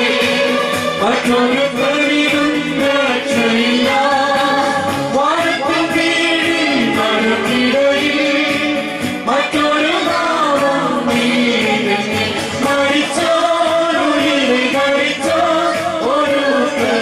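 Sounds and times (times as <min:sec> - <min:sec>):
congregation singing a hymn: 0:00.0 - 0:17.0.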